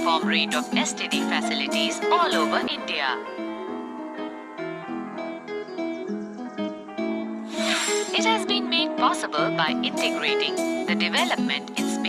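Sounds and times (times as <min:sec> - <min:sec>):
keyboard notes music: 0:00.0 - 0:12.0
hissing whoosh: 0:07.5 - 0:08.5.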